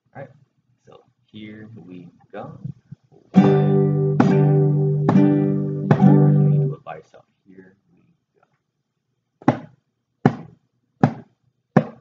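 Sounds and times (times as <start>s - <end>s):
hand drum struck: 4.2s - 6.4s.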